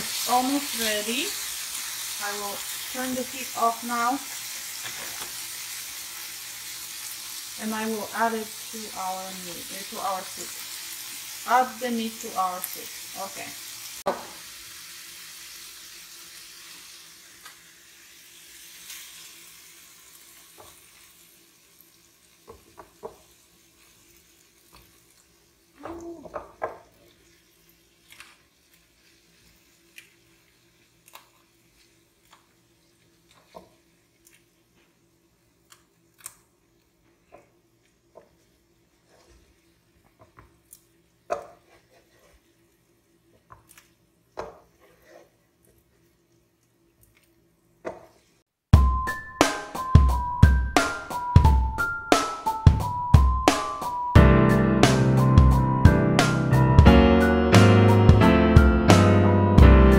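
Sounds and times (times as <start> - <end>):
frying pan sizzle: 0.0 - 43.4.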